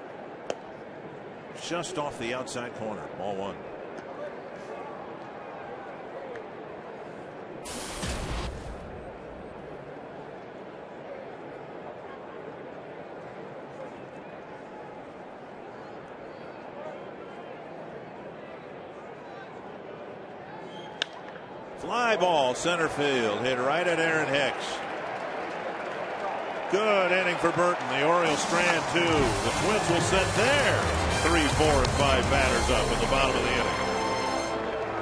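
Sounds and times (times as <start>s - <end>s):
brief burst of noise: 7.6s - 9.6s.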